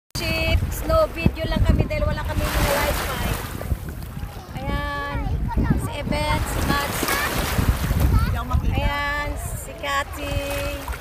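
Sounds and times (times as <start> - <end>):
women's voices: 0.2 - 3.5, 4.5 - 7.5, 8.3 - 11.0
surf washing over sand: 0.2 - 11.0
wind buffeting microphone: 0.2 - 11.0.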